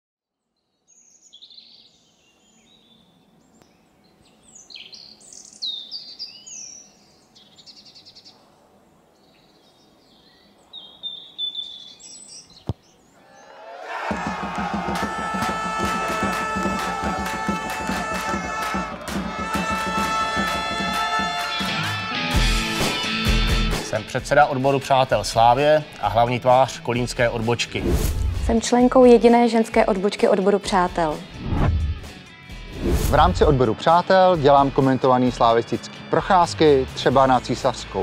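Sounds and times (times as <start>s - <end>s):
birds chirping: 0.7s - 21.7s
rock music with electric guitar: 20.4s - 24.2s, 31.5s - 33.0s.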